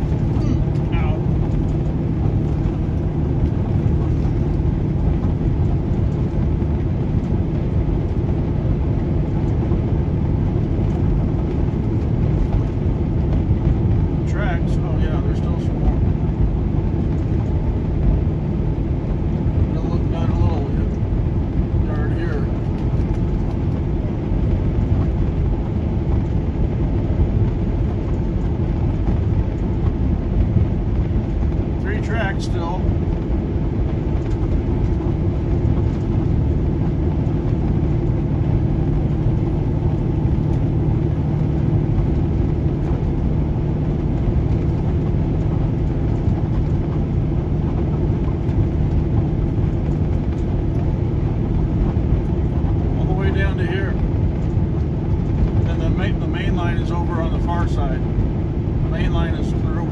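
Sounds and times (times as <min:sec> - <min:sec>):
car road noise from inside: 0:00.0 - 0:59.9
steady hum: 0:00.0 - 0:59.9.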